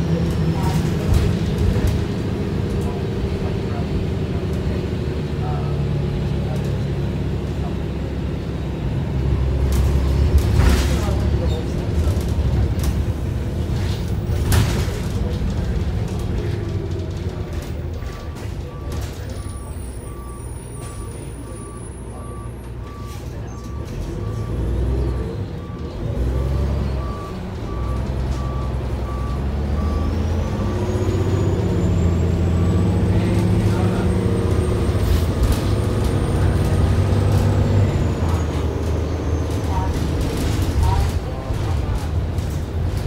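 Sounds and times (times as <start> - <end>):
bus diesel engine accelerating: 0.0 - 43.0.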